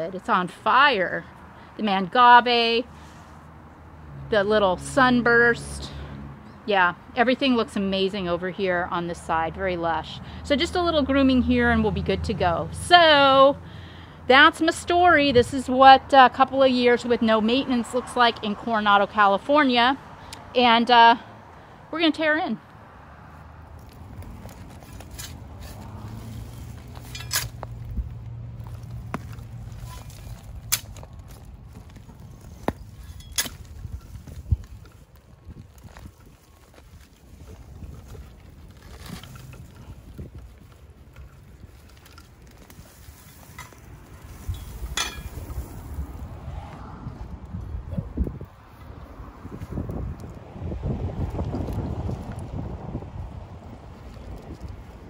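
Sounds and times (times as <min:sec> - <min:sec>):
wind rumble on microphone: 0:14.9 - 0:16.1, 0:23.7 - 0:55.0.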